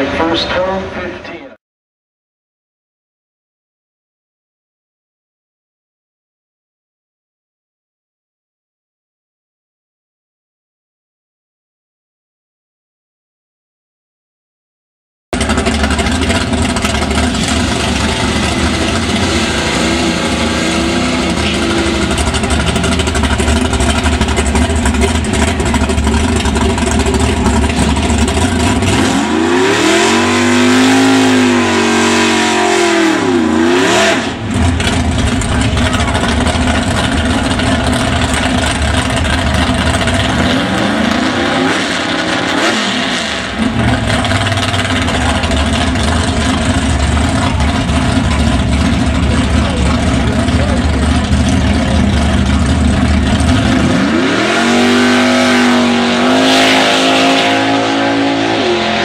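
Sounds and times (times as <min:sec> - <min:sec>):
drag car engine revving: 0:15.4 - 0:59.0.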